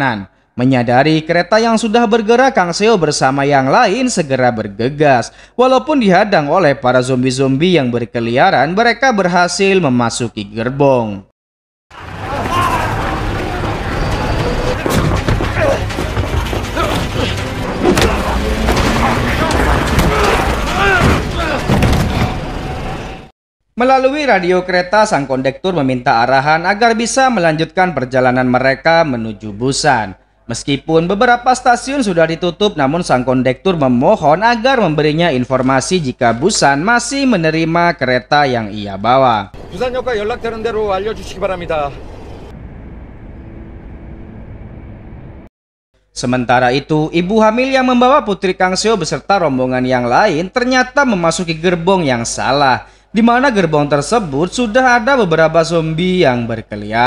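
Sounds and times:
action film music: 12.0s - 23.1s
train rumbling along track: 39.6s - 45.4s.

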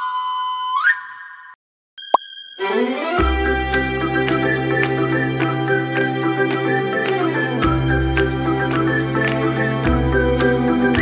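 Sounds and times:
whistle-like logo jingle: 0.0s - 11.0s.

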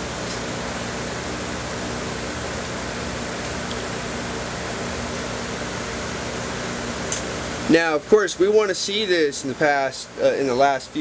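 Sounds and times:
low fan hum: 0.0s - 11.0s.

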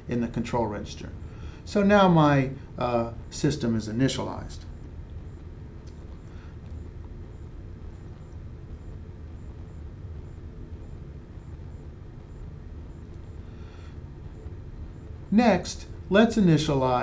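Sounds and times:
low room noise rumble: 0.0s - 17.0s.

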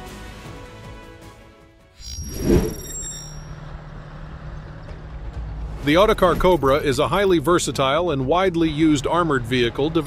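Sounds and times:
vehicle engine droning: 3.4s - 7.3s.

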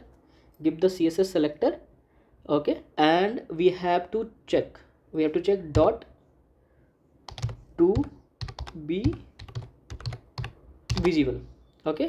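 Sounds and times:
keyboard typing clicks: 7.3s - 11.2s.

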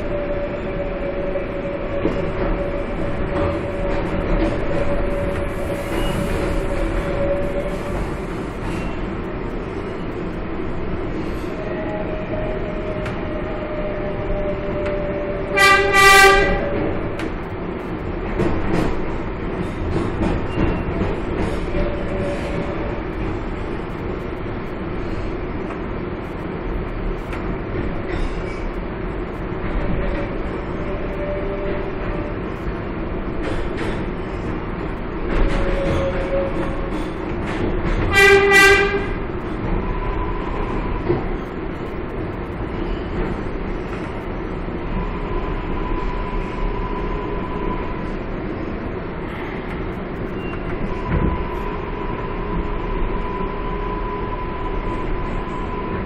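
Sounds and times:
train horn toots: 0.0s - 8.0s, 11.5s - 17.0s, 30.8s - 32.4s, 35.5s - 37.1s, 38.0s - 39.3s
subway train rumble: 0.0s - 56.0s.

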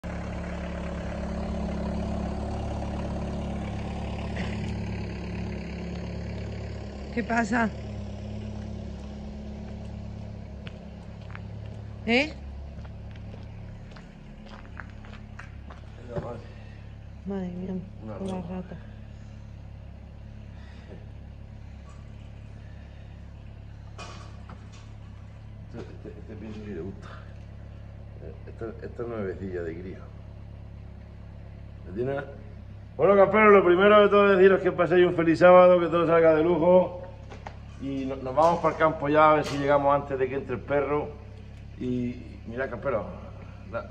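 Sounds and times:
van engine idling: 0.0s - 43.9s
steady low hum: 6.3s - 43.9s.

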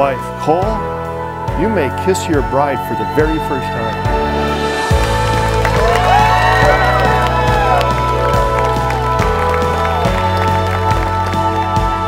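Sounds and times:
background music: 0.0s - 12.0s
crowd applauding: 4.8s - 12.0s
crowd cheering and whooping: 5.0s - 11.1s.

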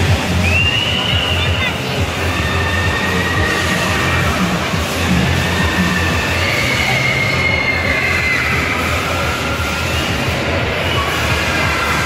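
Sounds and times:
amusement rides rumbling and whining: 0.0s - 12.0s
background music: 0.0s - 12.0s.

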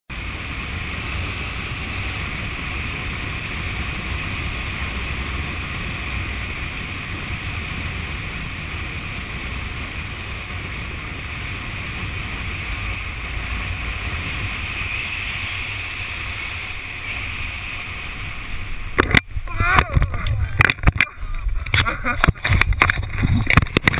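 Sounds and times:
wind rushing over microphone: 0.1s - 23.9s
wind buffeting and knocks: 18.9s - 23.9s.

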